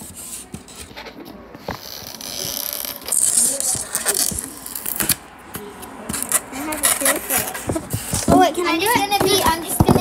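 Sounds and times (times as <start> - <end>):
rustling and scraping: 0.0 - 5.2, 6.0 - 10.0.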